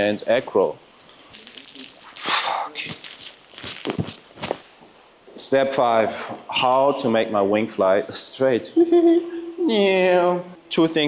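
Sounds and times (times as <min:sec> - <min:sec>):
footsteps scuffing on gritty asphalt: 0:01.3 - 0:04.7.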